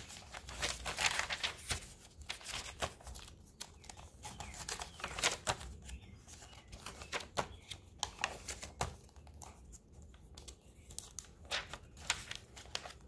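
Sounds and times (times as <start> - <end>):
paper pages rustling and crinkling: 0.0 - 13.0.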